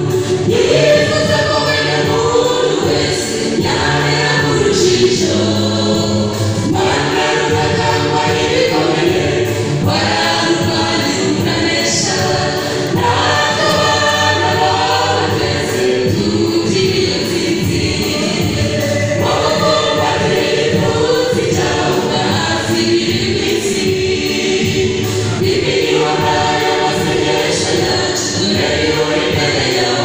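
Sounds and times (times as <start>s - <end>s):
choir singing gospel: 0.0s - 30.0s.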